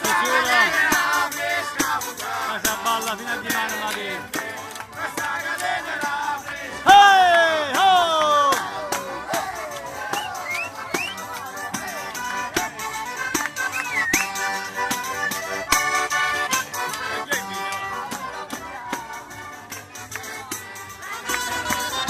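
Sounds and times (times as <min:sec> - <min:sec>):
button accordions playing dance tune: 0:00.0 - 0:22.0.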